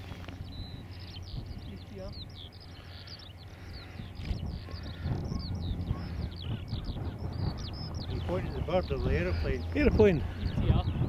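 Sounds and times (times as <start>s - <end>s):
propeller plane engine: 0.0s - 11.0s
skylark singing: 0.0s - 11.0s.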